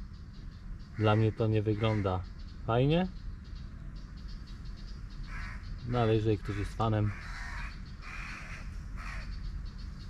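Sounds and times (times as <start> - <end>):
crow cawing: 1.0 - 2.3, 5.2 - 5.8, 6.4 - 9.4.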